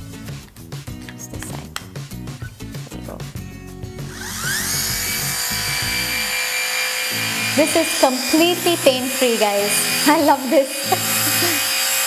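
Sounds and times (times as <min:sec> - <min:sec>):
epilator motor buzzing: 0:04.0 - 0:12.0.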